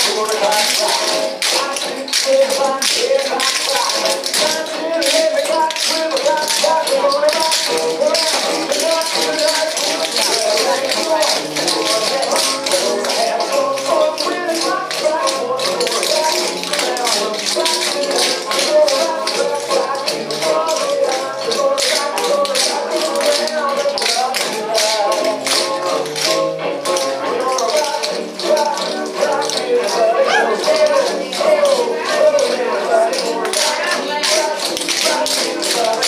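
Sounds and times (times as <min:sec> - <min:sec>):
recorded swing music: 0:00.0 - 0:36.0
tap shoes on wooden floor: 0:00.0 - 0:36.0.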